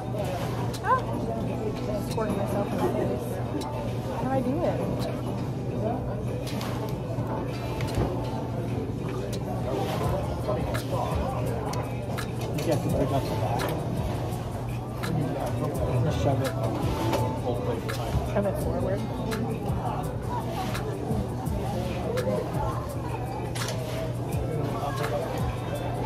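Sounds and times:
background music: 0:00.0 - 0:26.0
diners chatter: 0:00.0 - 0:26.0.

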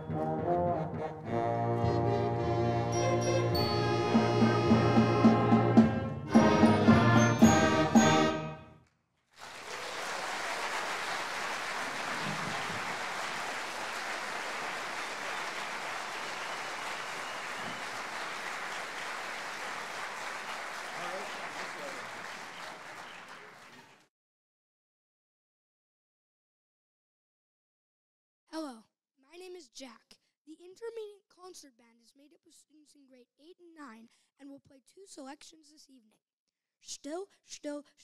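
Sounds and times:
concert band playing: 0:00.0 - 0:08.6
audience applauding: 0:09.4 - 0:24.1.

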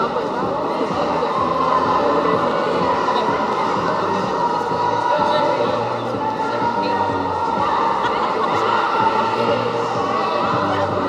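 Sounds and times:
crowd noise echoing: 0:00.0 - 0:11.0.

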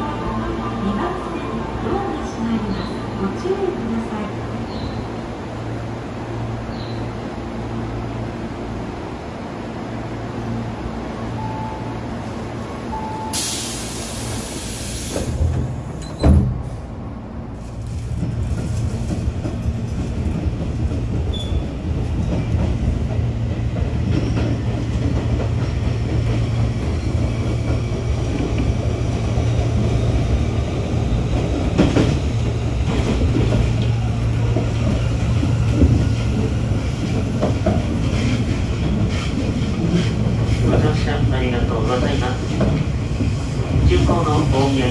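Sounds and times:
electric train hum: 0:00.0 - 0:44.9.

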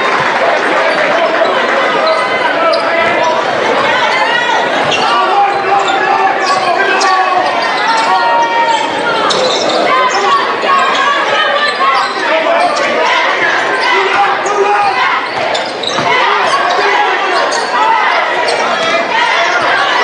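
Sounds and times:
voices echoing in hall: 0:00.0 - 0:20.0
sneakers squeaking: 0:00.1 - 0:20.0.

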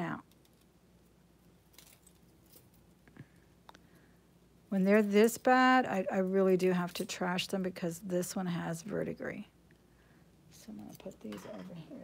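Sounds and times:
metal jewelry jingling: 0:01.6 - 0:02.9.

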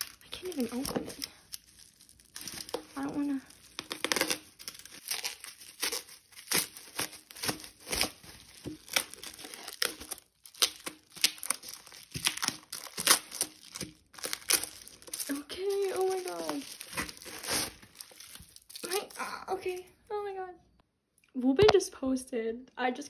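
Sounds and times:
plastic wrap crinkling and tearing: 0:00.0 - 0:19.9.

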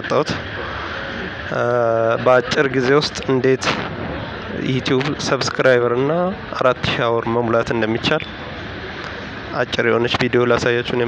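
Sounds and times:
man speaking: 0:00.0 - 0:00.5, 0:01.5 - 0:03.9, 0:04.5 - 0:08.2, 0:09.5 - 0:11.0.

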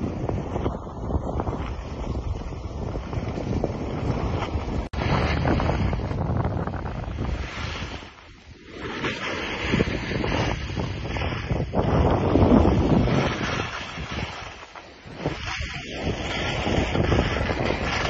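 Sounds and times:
wind buffeting microphone: 0:00.0 - 0:18.0
sliding over snow hiss: 0:07.0 - 0:18.0.

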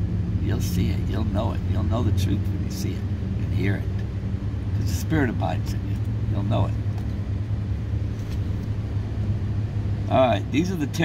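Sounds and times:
van engine idling hum: 0:00.0 - 0:11.0.

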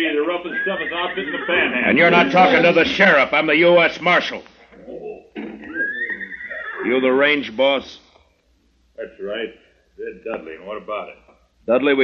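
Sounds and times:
horse whinnying: 0:00.5 - 0:03.3, 0:05.6 - 0:07.0.

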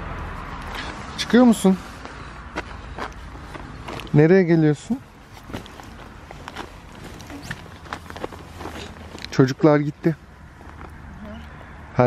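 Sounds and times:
soft rustling: 0:00.7 - 0:11.6.

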